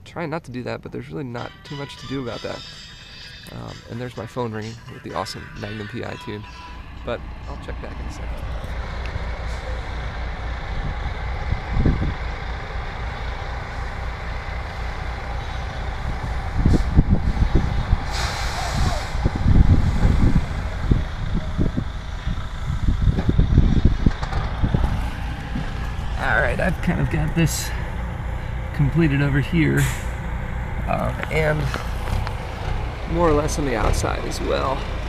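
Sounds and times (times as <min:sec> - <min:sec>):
heavy vehicle engine rumbling: 0:01.0 - 0:35.0
short hiss: 0:18.1 - 0:19.2.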